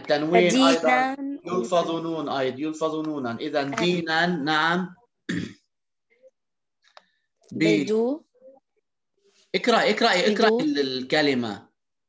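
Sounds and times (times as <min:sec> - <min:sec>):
person talking: 0:00.2 - 0:01.7, 0:07.5 - 0:08.2
person clearing throat: 0:05.3 - 0:05.7.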